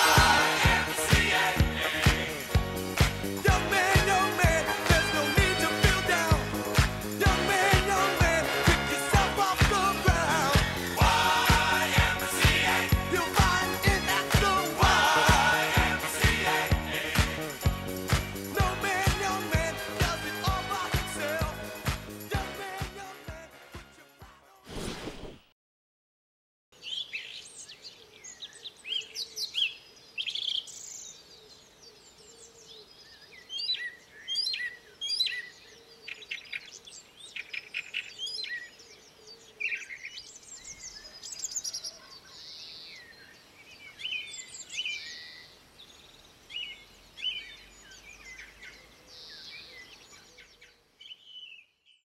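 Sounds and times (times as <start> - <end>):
songbirds singing and chirping: 26.8 - 52.0.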